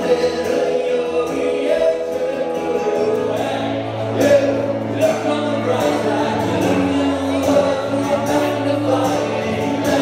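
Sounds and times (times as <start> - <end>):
acoustic guitar: 0.0 - 10.0
held keyboard chords: 0.0 - 10.0
man singing: 0.0 - 10.0.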